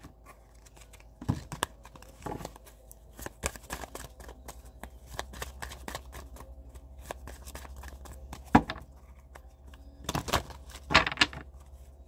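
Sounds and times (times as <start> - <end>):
cards being shuffled: 0.0 - 11.9.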